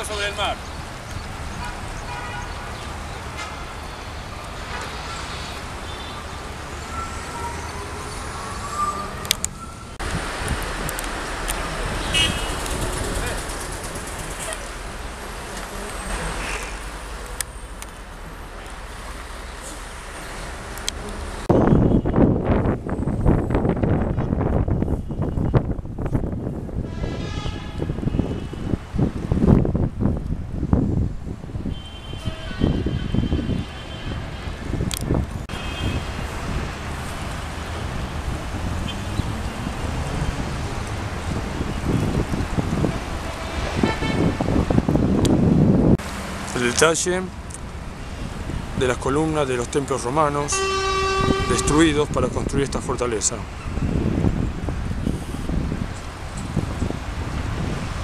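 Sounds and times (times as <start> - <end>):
road traffic: 0.0 - 58.0
car horn toots: 12.0 - 12.6, 26.9 - 28.6, 31.7 - 34.2, 35.5 - 36.1, 43.4 - 44.3, 50.5 - 52.0.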